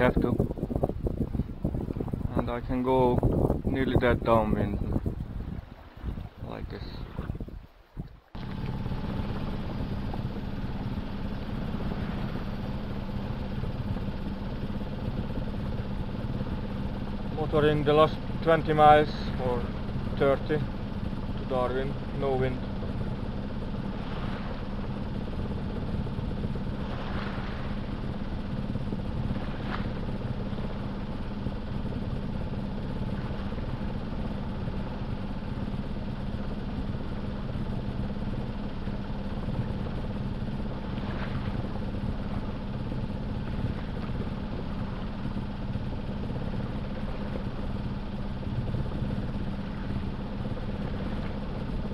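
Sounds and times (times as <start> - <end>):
boat engine humming: 0.0 - 51.9
water washing along hull: 0.0 - 51.9.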